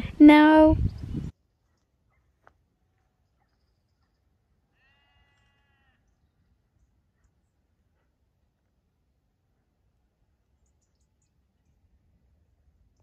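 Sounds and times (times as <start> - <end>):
faint sheep bleat: 4.7 - 6.1.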